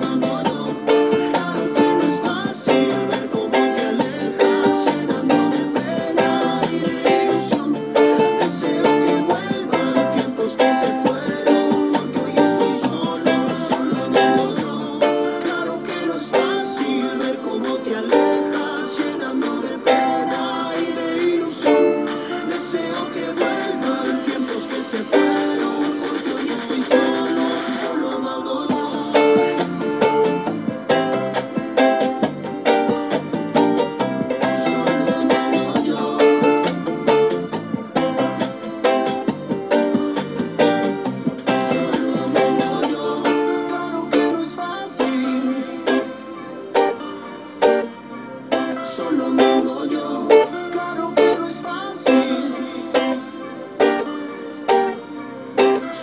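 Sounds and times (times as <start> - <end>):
ukulele strumming: 0.0 - 56.0.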